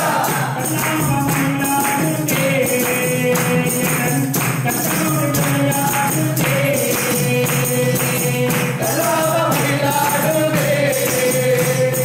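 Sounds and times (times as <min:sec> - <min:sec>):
man singing devotional song: 0:00.0 - 0:12.0
people singing along: 0:00.0 - 0:12.0
tambourine beat: 0:00.0 - 0:12.0.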